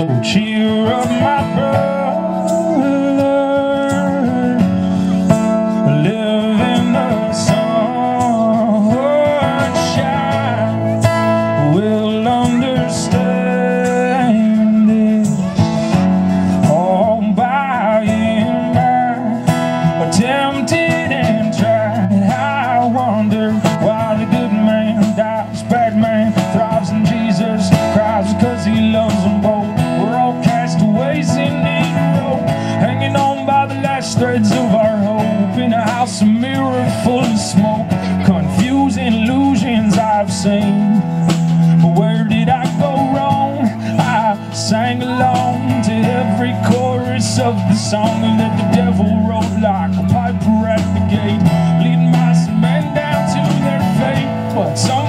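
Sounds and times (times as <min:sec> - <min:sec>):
strummed acoustic guitar: 0:00.0 - 0:55.0.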